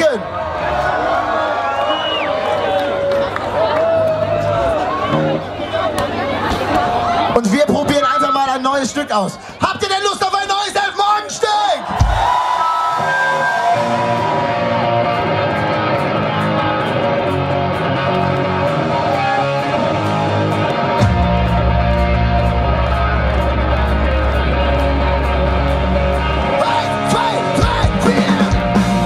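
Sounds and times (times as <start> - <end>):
electric guitar: 3.8 - 6.2, 12.6 - 29.0
bass and drums: 11.9 - 12.4, 13.5 - 29.0.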